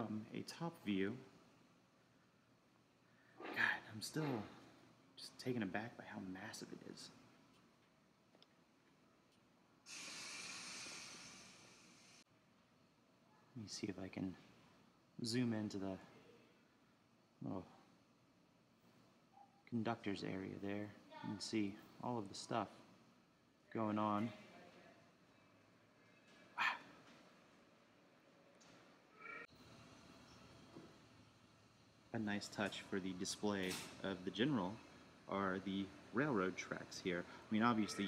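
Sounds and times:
steady high hiss: 0:09.8 - 0:12.3, 0:29.5 - 0:38.0
person whispering wow: 0:26.6 - 0:26.9.

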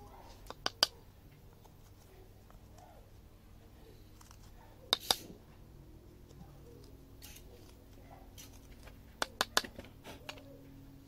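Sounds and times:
knife cutting wood: 0:04.2 - 0:05.4.

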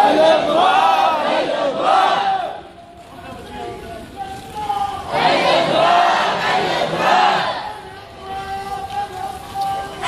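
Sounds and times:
crowd shouting slogan: 0:00.0 - 0:02.8, 0:03.6 - 0:10.0.

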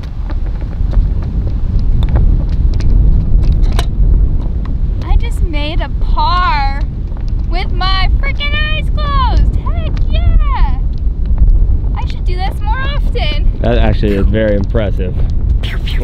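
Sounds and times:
wind buffeting microphone: 0:00.0 - 0:16.0
high-pitched wavering vocalizing: 0:15.6 - 0:16.0.

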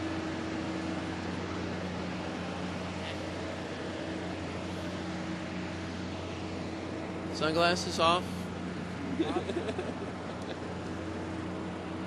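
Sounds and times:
machinery droning: 0:00.0 - 0:12.0.

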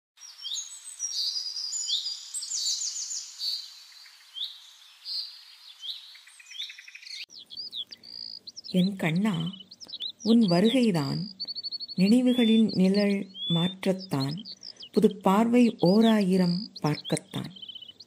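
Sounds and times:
birdsong whistles and trills: 0:00.2 - 0:18.0.

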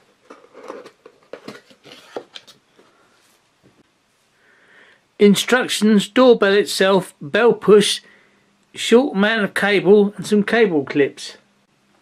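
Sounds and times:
scrapes clicks and rustles: 0:00.0 - 0:03.4.

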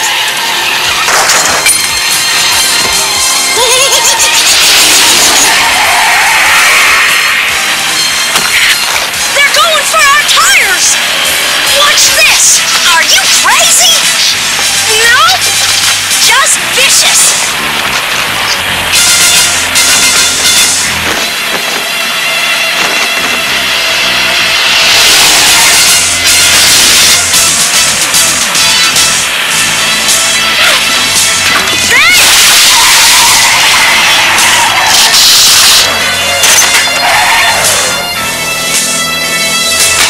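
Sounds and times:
background music: 0:00.0 - 0:40.0
steady rush of noise: 0:00.0 - 0:40.0
tyres skidding: 0:00.0 - 0:40.0
vehicle engine: 0:00.0 - 0:40.0
crashing sound effects: 0:00.8 - 0:09.4, 0:17.4 - 0:38.2.

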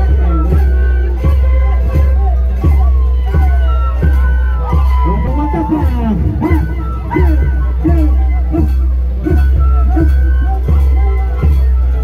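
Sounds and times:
high held melodic note: 0:00.0 - 0:12.0.

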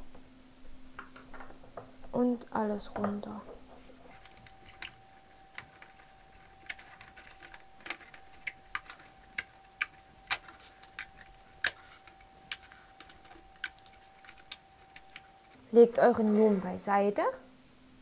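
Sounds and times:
faint steady tone: 0:02.4 - 0:16.4.

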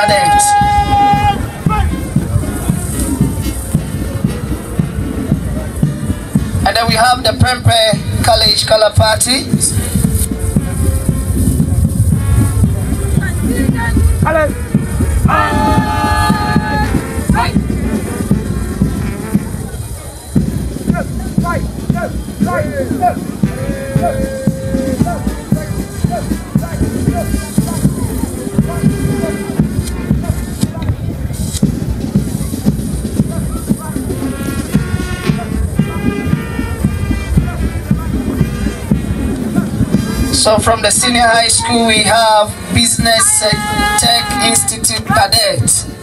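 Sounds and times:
man speaking over public address: 0:00.0 - 0:03.6, 0:06.5 - 0:10.3, 0:13.2 - 0:17.7, 0:20.8 - 0:31.3, 0:37.3 - 0:46.0
marching band music: 0:00.0 - 0:46.0
steady drum beat: 0:00.0 - 0:46.0.

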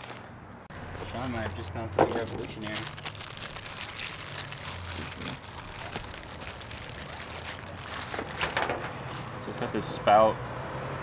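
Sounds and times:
plastic bag crinkling: 0:00.0 - 0:09.7.

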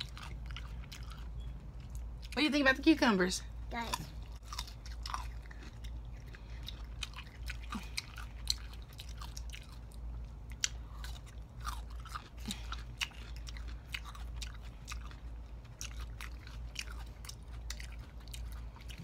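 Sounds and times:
people chewing cucumber: 0:00.0 - 0:19.0
steady low hum: 0:00.0 - 0:19.0.

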